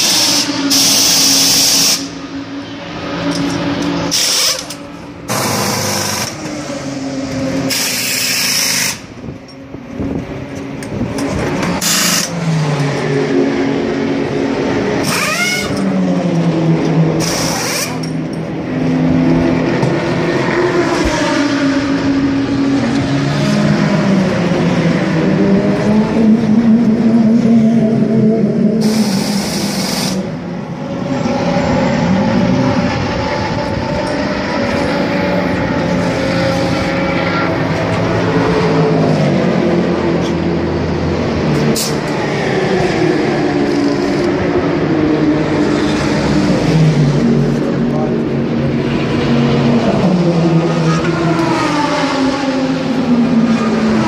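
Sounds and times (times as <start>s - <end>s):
pneumatic wheel gun bursts: 0.0s - 2.2s, 4.1s - 6.5s, 7.7s - 9.1s, 11.8s - 12.3s, 15.0s - 15.8s, 17.2s - 18.1s, 28.8s - 30.4s
race car engines running: 0.0s - 54.0s.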